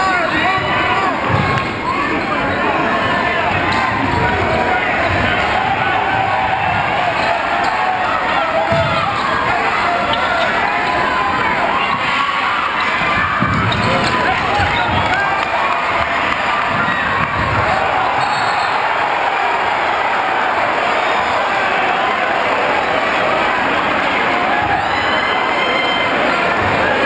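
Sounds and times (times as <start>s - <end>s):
crowd shouting and cheering: 0.0s - 27.0s
basketball bouncing on court: 8.6s - 9.5s, 11.8s - 18.6s.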